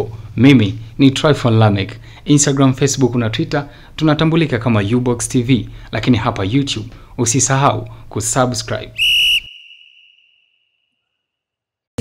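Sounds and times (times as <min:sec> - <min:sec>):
short high whistle tone: 0:09.0 - 0:11.0.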